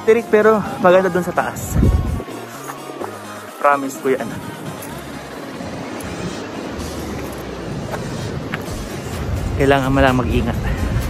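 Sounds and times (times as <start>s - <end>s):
wind buffeting microphone: 0.6s - 11.0s.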